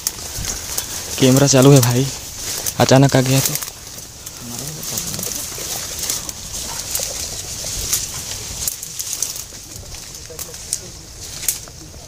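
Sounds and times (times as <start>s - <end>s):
leaves and stems brushing and snapping: 0.0s - 12.0s
steady high hiss: 0.0s - 12.0s.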